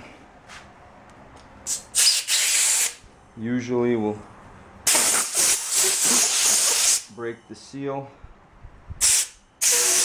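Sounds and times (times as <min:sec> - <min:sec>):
air blow gun hissing: 0:01.7 - 0:03.0, 0:04.9 - 0:07.1, 0:09.0 - 0:10.0.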